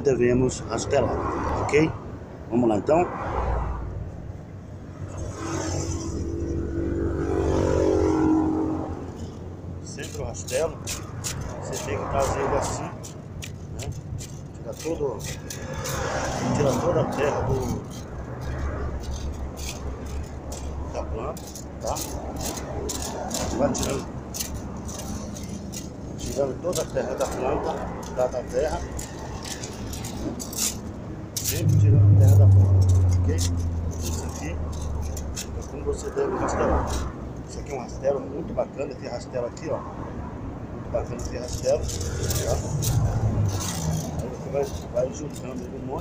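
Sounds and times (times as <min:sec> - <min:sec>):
vehicle engine driving past: 0:05.0 - 0:09.5, 0:15.5 - 0:21.4, 0:31.5 - 0:37.2
metal rake scraping dry grass: 0:07.2 - 0:37.2, 0:41.2 - 0:46.0
steady low rumble: 0:16.6 - 0:35.8.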